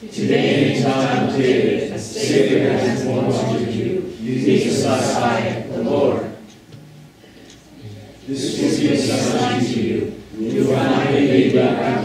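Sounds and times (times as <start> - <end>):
congregation reading aloud in unison: 0.0 - 12.0.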